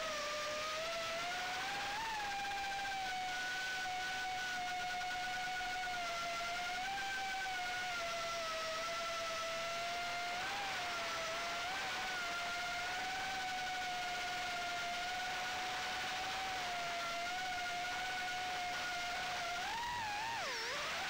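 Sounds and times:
quadcopter motors whining: 0.0s - 21.0s.

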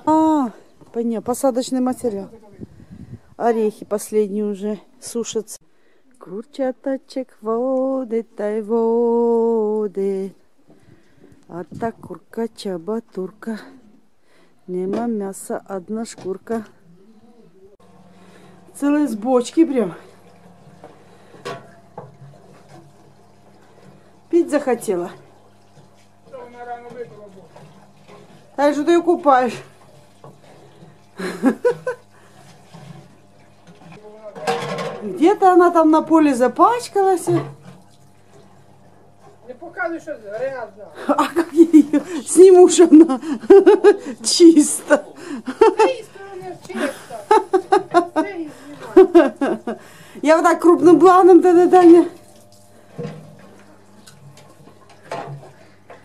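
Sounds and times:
woman talking: 0.0s - 2.4s, 3.3s - 5.6s, 6.2s - 10.4s, 11.5s - 14.0s, 14.7s - 16.8s, 18.7s - 20.1s, 24.3s - 25.2s, 28.6s - 29.7s, 35.0s - 37.5s, 41.0s - 52.2s
cow sucking and sloshing water: 18.1s - 34.2s, 35.9s - 40.8s, 41.4s - 56.0s
woman chuckling: 31.2s - 32.0s, 41.0s - 46.1s, 46.7s - 49.8s.

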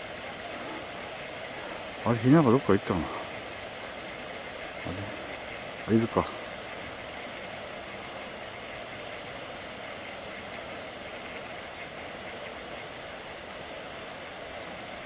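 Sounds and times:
steady background noise: 0.0s - 15.0s.

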